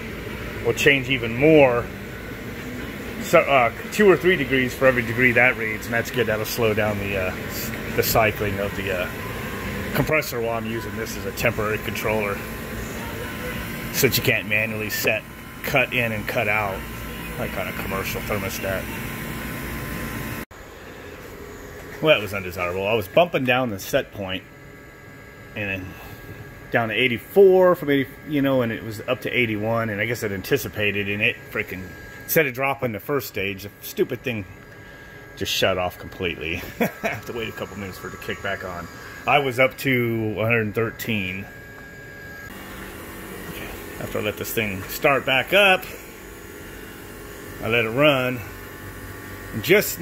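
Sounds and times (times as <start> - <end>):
heat pump compressor hum: 0.0 - 50.0
quieter steady hum: 0.0 - 50.0.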